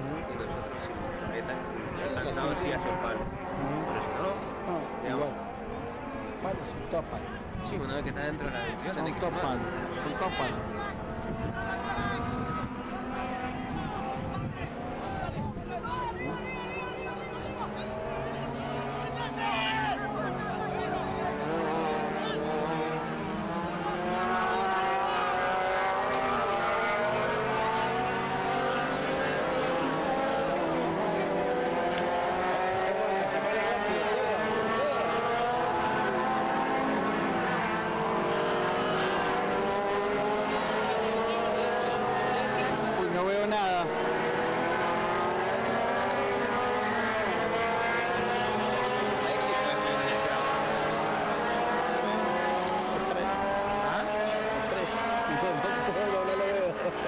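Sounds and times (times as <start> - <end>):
vehicle engine accelerating: 0.0 - 57.0.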